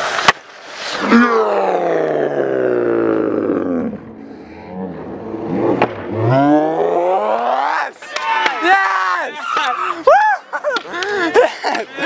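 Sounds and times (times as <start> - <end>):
skateboard wheels rolling on concrete: 0.0 - 1.7.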